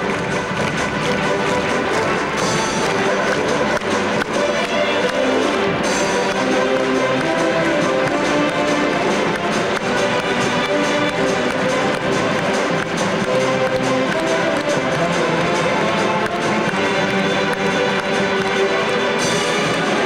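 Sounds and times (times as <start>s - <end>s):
string band playing: 0.0s - 20.0s.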